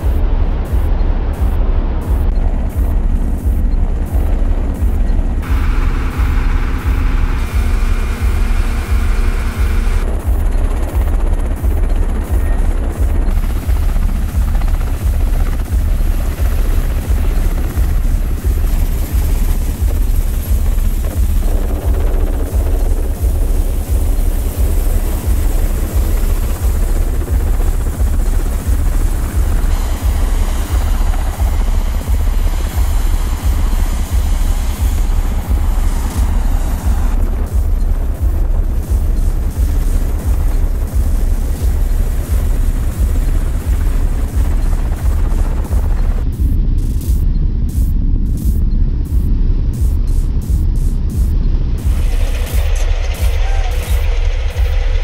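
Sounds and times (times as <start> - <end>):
helicopter rotors beating: 0.0 - 55.0.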